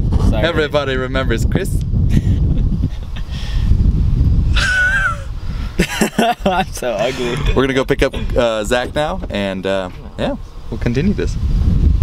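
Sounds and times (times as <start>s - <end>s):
person's high-pitched squealing laughter: 4.5s - 5.4s.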